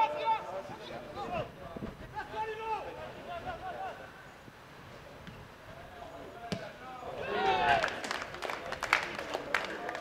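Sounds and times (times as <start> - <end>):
football being kicked: 6.5 - 6.7.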